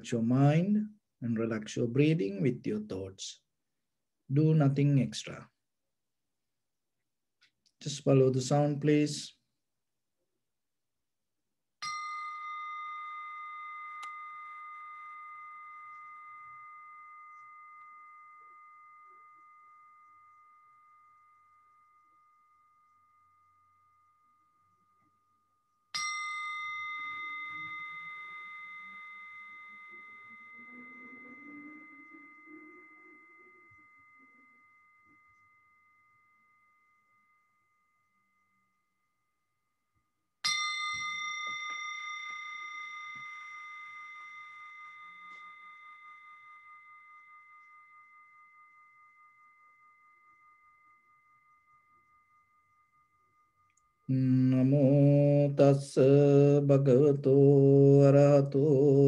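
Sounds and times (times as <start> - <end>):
meditation bell ringing: 11.8 - 59.0
man chanting: 54.1 - 59.0.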